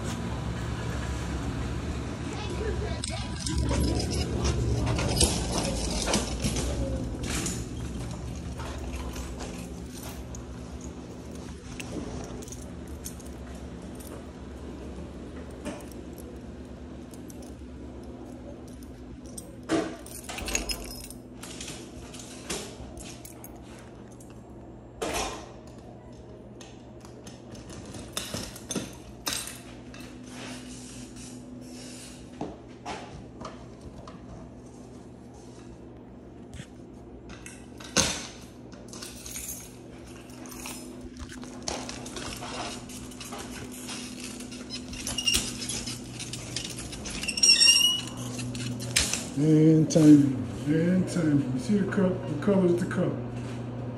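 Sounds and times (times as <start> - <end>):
low steady hum: 0.0 - 53.9
light metallic clinking and rattling: 3.0 - 14.3, 15.4 - 22.4, 38.9 - 49.4
keys jangling: 3.0 - 14.7, 15.3 - 24.4, 38.8 - 49.4.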